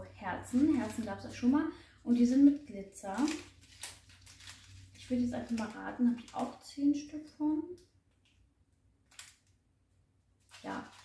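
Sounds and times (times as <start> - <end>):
plastic wrapper rustle: 0.4 - 6.8, 9.0 - 9.6, 10.4 - 11.0.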